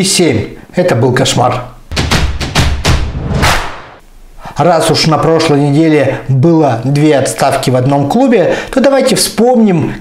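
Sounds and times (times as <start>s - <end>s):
heavy bass thumps: 1.9s - 4.0s
sweeping whoosh hits: 1.9s - 4.0s.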